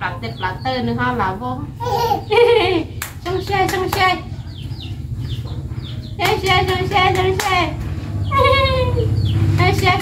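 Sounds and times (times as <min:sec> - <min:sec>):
hands clapping: 0:03.0 - 0:04.1, 0:06.2 - 0:07.7.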